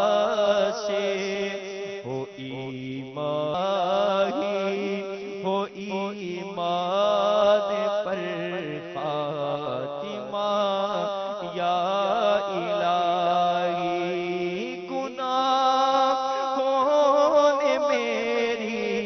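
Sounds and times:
man singing into a microphone: 0.0 - 19.0.

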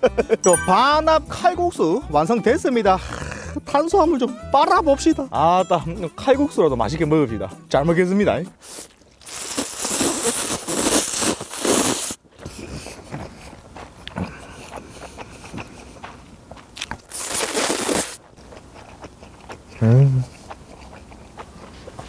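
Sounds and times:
person slurping noodles: 8.6 - 12.8, 17.1 - 18.2.

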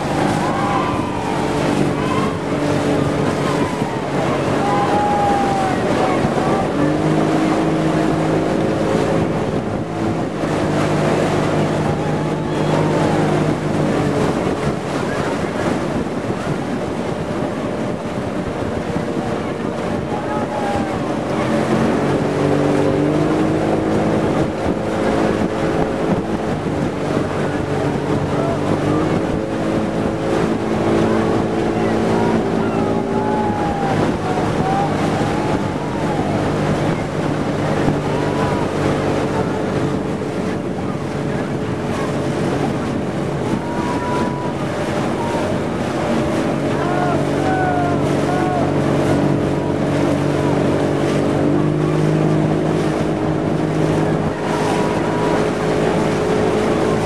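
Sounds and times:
outboard motor running: 0.0 - 57.0
water rushing past hull: 0.0 - 57.0
wind buffeting microphone: 0.0 - 57.0.

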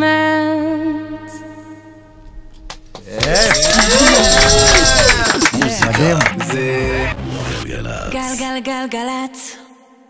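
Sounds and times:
people whooping and cheering: 3.1 - 6.4.

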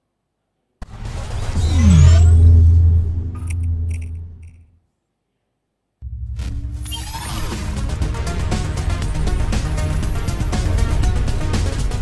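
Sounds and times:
cinematic hit: 0.8 - 4.6, 6.0 - 6.9
deep falling rumble: 1.0 - 4.6
rising whoosh: 1.0 - 4.6.

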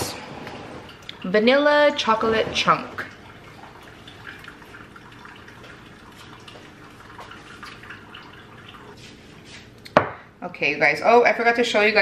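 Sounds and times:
coffee maker trickling and dripping: 0.9 - 9.0.

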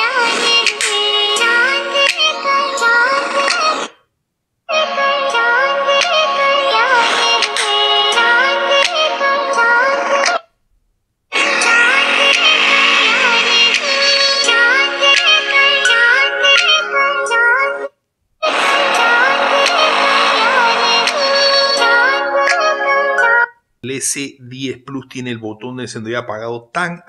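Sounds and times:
pop music through phone speaker: 0.0 - 4.1, 4.7 - 10.6, 11.3 - 23.7.

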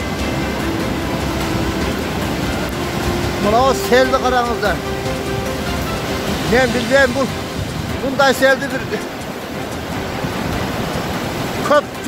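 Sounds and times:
rushing mudflow: 0.0 - 12.0.

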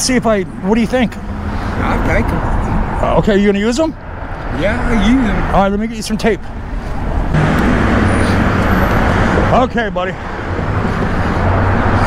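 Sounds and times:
road traffic rushing by: 0.0 - 12.0.

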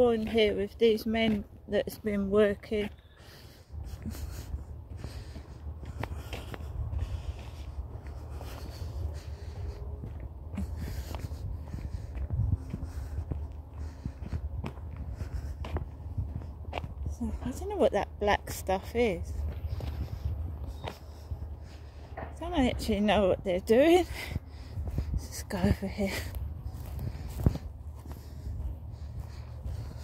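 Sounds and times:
footsteps on grass and dirt: 0.0 - 30.0
steady low rumble: 0.0 - 30.0.

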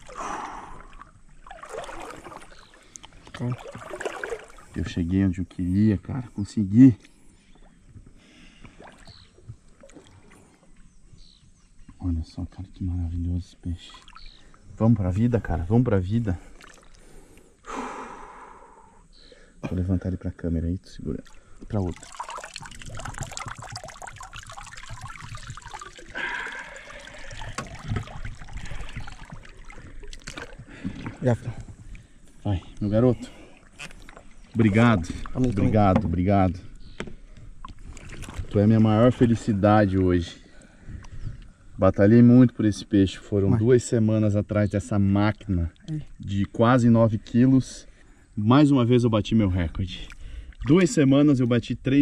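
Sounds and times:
river water lapping and splashing: 0.0 - 5.2, 7.0 - 11.6, 13.6 - 18.6, 21.0 - 41.8, 49.6 - 51.3.

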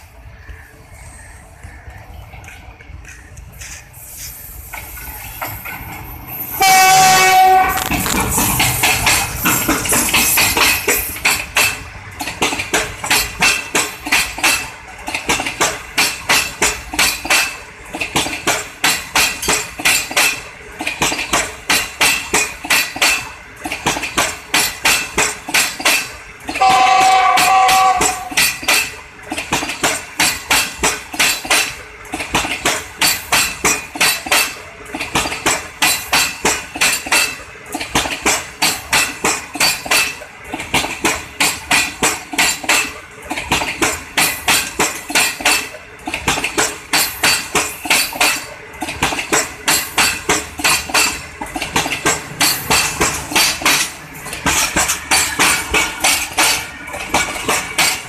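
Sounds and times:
train wheels clacking over rail joints: 1.6 - 58.0.

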